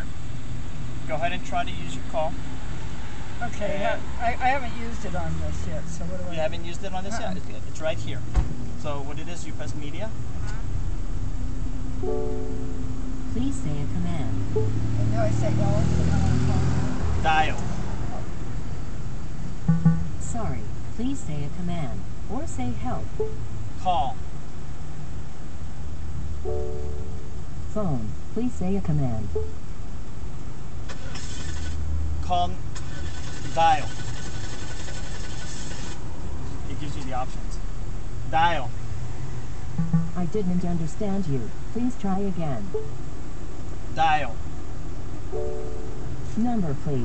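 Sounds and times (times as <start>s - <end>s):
car interior rumble: 0.0s - 47.0s.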